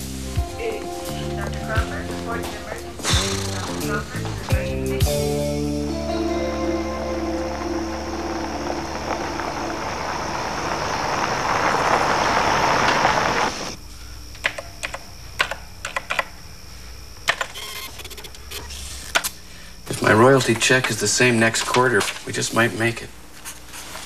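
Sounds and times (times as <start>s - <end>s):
car driving on dirt road: 7.0s - 13.8s
calculator keys clicking: 14.4s - 16.3s.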